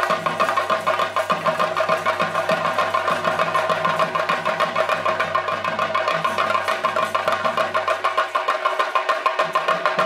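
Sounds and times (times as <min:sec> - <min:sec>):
drums played fast: 0:00.0 - 0:10.0.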